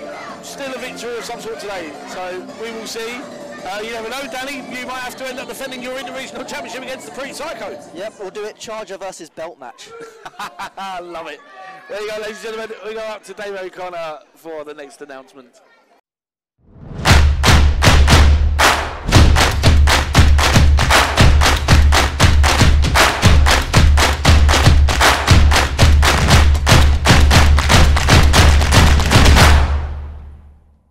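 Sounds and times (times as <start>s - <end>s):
music with heavy bass line: 17.1s - 29.9s.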